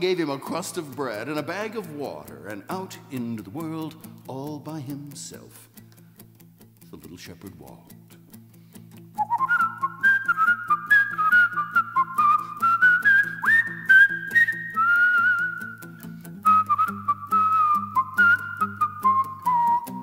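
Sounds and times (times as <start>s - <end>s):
acoustic guitar fingerpicking: 0.0s - 20.0s
man whistling a melody: 9.1s - 20.0s.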